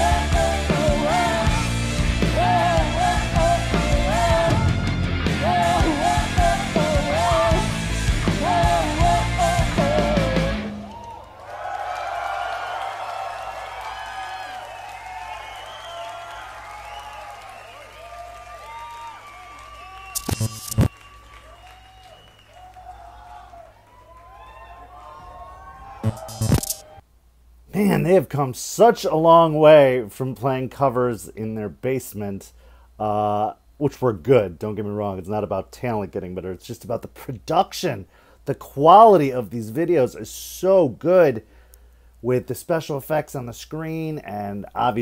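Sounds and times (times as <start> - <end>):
live rock band playing: 0.0 - 10.7
person singing: 0.0 - 10.9
crowd cheering and applauding: 0.0 - 27.0.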